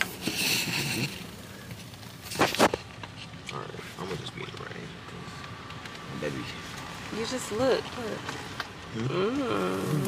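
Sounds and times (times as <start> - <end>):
soft background noise: 0.0 - 10.0.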